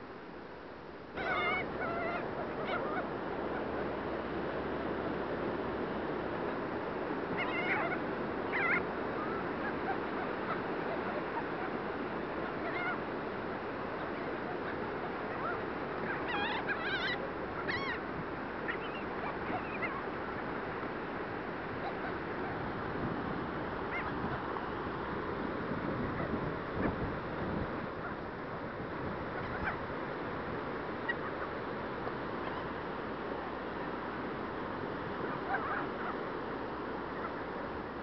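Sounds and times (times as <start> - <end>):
gulls calling: 1.2 - 38.0.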